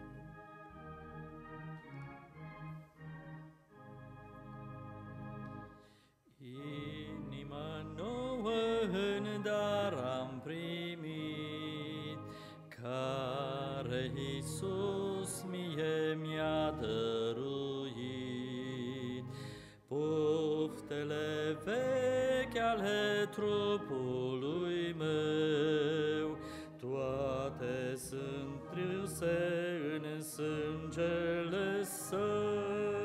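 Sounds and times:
singers breathing: 5.7 - 6.2, 12.2 - 12.7, 19.3 - 19.9, 26.4 - 26.8
congregation singing a hymn: 6.4 - 33.0.

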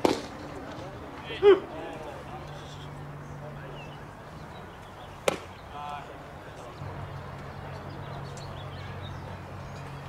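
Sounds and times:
bat cracking a ball: 0.0 - 0.5, 5.2 - 5.5.

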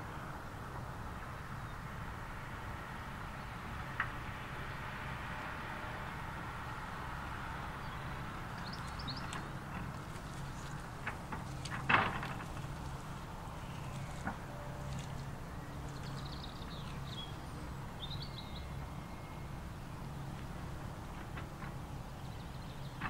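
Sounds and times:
distant steam locomotive rumble: 0.0 - 23.0.

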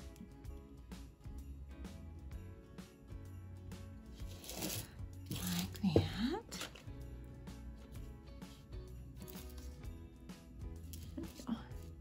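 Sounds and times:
soft background music: 0.0 - 12.0
rock scraping on paper: 4.2 - 5.8.

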